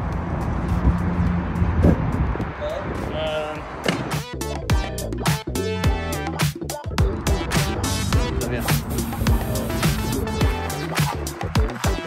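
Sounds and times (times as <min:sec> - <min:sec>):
outdoor noise: 0:00.0 - 0:12.0
music with drum beat: 0:04.1 - 0:12.0.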